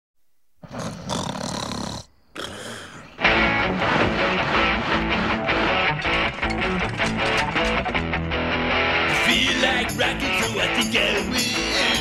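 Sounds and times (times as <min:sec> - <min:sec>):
distorted electric guitar: 0:03.2 - 0:12.0.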